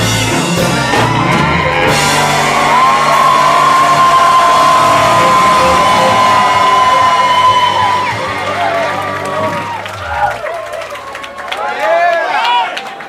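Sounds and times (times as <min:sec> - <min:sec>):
live ska band playing: 0:00.0 - 0:10.7
held high note: 0:01.3 - 0:10.4.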